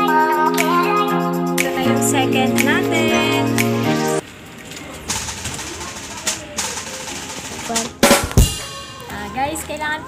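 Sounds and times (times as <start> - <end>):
background music: 0.0 - 4.2.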